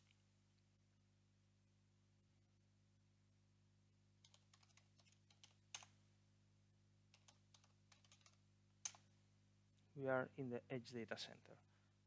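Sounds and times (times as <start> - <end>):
typing on computer keyboard: 4.2 - 6.0, 7.1 - 9.0.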